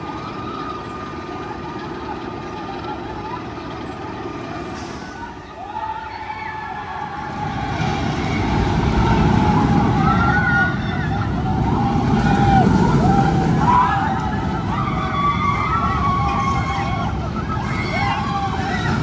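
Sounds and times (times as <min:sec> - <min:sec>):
roller coaster wheels rumbling on track: 0:00.0 - 0:19.0.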